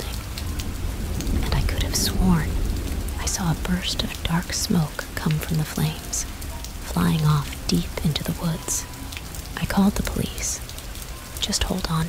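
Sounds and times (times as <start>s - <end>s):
low thunder rumble: 0.0s - 8.4s
steady rain: 0.0s - 12.0s.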